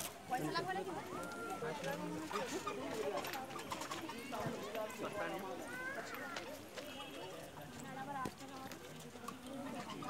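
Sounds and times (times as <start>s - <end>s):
distant crowd voices chatting: 0.0s - 10.0s.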